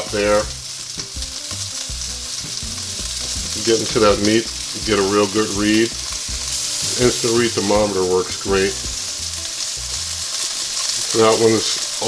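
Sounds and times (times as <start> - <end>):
chicken wings sizzling on grill: 0.0 - 12.0.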